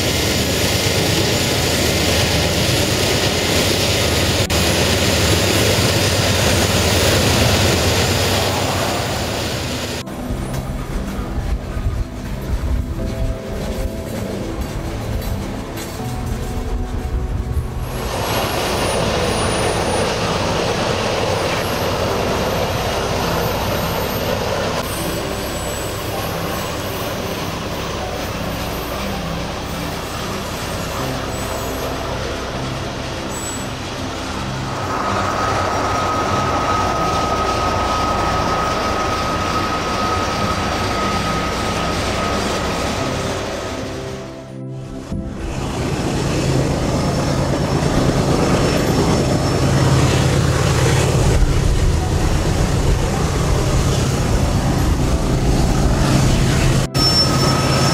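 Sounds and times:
music: 0.0 - 9.4, 10.0 - 57.9
freight train rumbling past: 0.0 - 57.9
wheel squeal: 17.8 - 44.3, 45.5 - 57.9.

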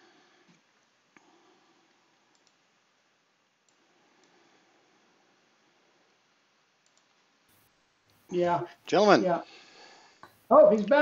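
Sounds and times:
small sharp clicks: 2.3 - 2.6, 6.8 - 8.2.

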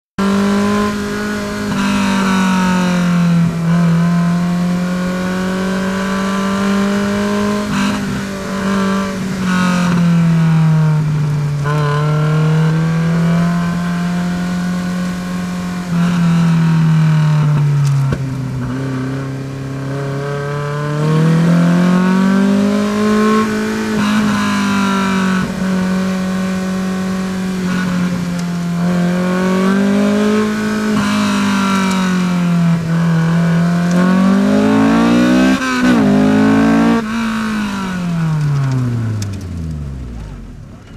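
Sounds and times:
race car engine revving: 0.2 - 40.9.

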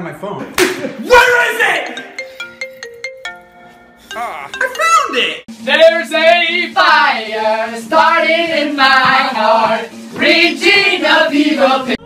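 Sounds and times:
mobile phone ringtone melody: 1.7 - 5.4.

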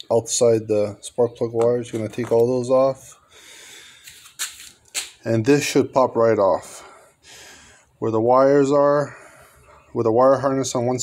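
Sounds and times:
man breathing: 3.1 - 4.4, 6.7 - 8.0, 9.0 - 9.9.

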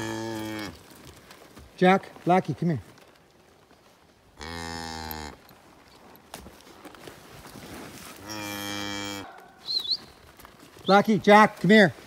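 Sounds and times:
cattle mooing: 0.0 - 0.8, 4.4 - 5.4, 8.2 - 9.3.

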